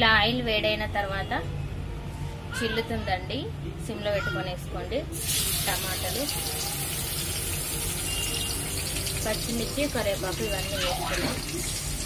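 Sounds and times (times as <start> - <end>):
tomatoes sizzling in hot oil: 5.2 - 12.0.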